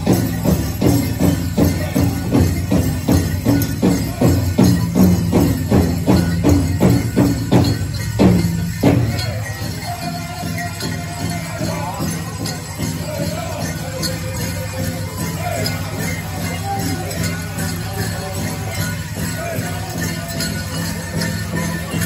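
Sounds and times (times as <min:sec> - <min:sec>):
metal jingles shaking: 0:00.0 - 0:22.0
voices: 0:00.0 - 0:22.0.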